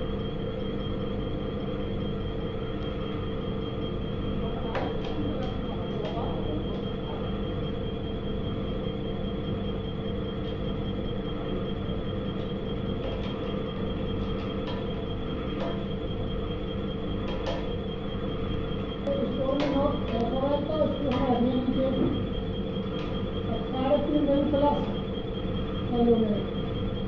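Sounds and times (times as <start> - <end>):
constant high tone: 0.0 - 27.0.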